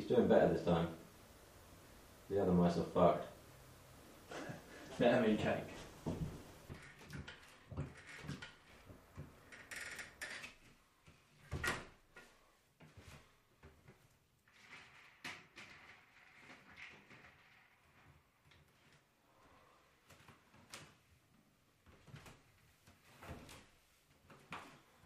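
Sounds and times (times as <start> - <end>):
person moving and handling things: 4.2 - 25.0.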